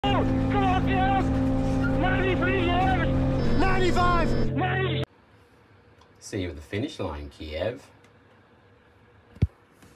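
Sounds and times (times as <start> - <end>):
man calling out: 2.0 - 5.0.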